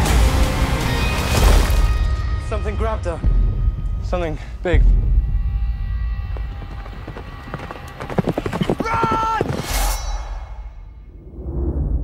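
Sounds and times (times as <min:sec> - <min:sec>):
loud rising whoosh: 0:10.2 - 0:12.0.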